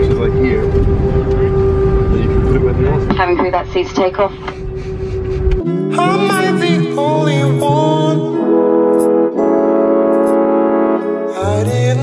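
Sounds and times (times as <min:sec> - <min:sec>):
airliner engine rumble: 0:00.0 - 0:06.7
constant hum: 0:00.0 - 0:07.0
person speaking: 0:05.6 - 0:08.3.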